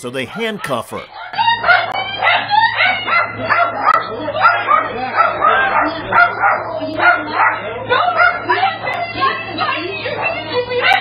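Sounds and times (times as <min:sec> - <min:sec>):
low electrical hum: 0:00.0 - 0:11.0
dog barking rapidly: 0:00.3 - 0:09.1, 0:10.2 - 0:11.0.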